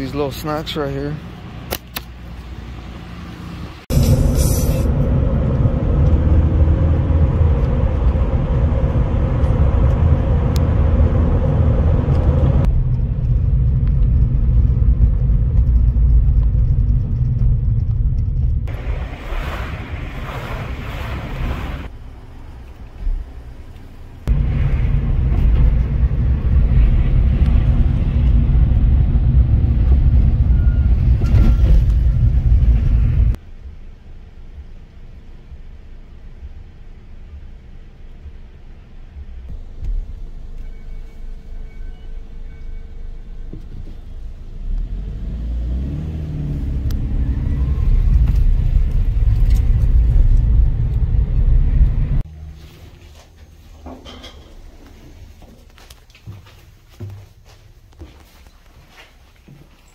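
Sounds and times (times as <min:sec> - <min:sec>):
car engine and road drone: 0:00.0 - 0:52.6.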